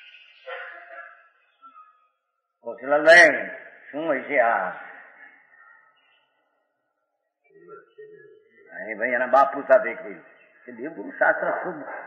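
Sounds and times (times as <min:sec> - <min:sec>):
man speaking: 0:02.6 - 0:05.2, 0:08.6 - 0:12.0.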